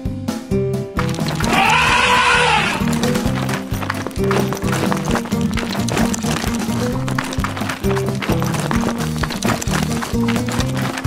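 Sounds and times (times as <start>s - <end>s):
cartoon elephant cry: 1.4s - 2.9s.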